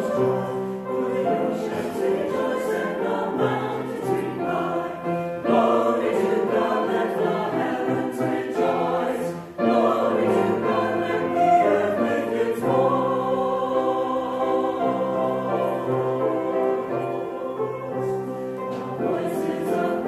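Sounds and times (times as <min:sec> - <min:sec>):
choir singing: 0:00.0 - 0:20.0
piano accompaniment: 0:00.0 - 0:20.0.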